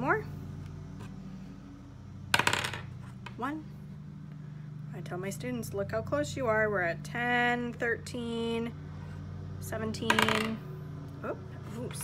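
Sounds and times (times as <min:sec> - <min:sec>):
steady low hum: 0:00.0 - 0:12.0
die clattering on table: 0:02.4 - 0:02.9, 0:10.1 - 0:10.6.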